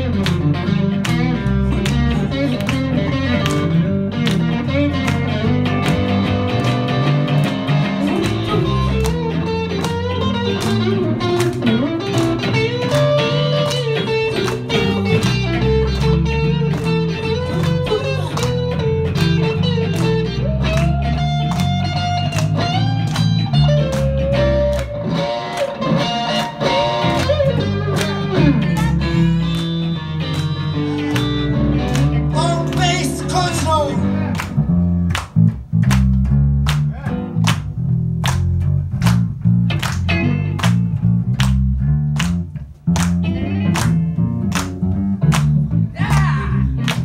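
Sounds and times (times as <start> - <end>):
bass guitar: 0.0 - 47.0
electric guitar lead: 0.0 - 47.0.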